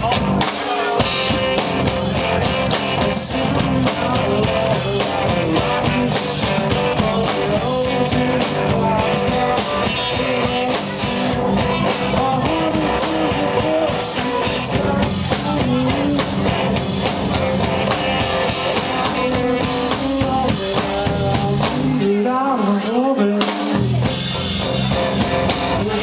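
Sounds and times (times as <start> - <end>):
drum kit: 0.0 - 26.0
electric guitar: 0.0 - 26.0.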